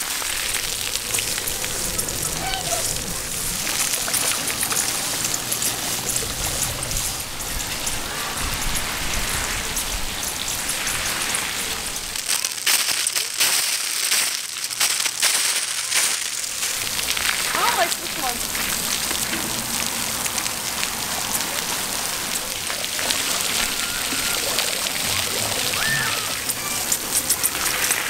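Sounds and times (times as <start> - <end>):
water jets spraying on concrete: 0.0 - 28.0
water spattering on camera: 0.0 - 28.0.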